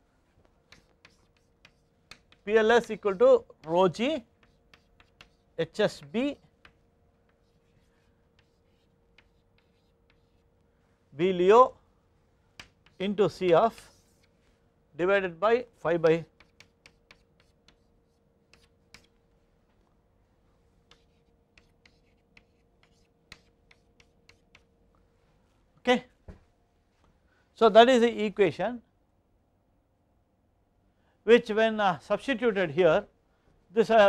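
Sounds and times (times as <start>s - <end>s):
chalk tapping on blackboard: 0.6s - 10.5s, 12.5s - 14.4s, 16.2s - 19.2s, 20.8s - 24.7s.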